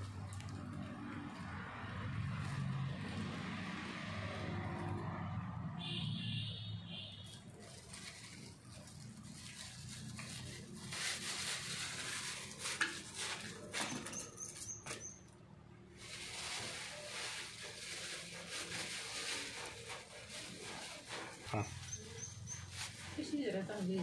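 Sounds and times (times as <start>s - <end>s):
seeds rustling stirred by hand: 7.3s - 14.1s, 15.9s - 24.0s.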